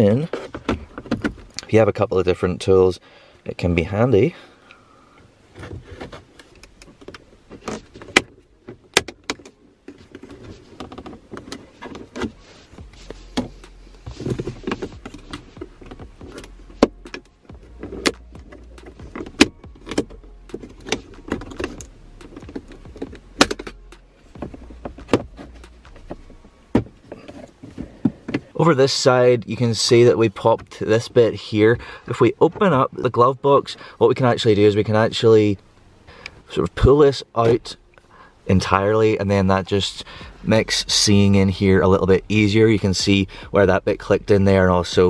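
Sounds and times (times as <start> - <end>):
plastic scraping on plastic: 9.9 - 26.4.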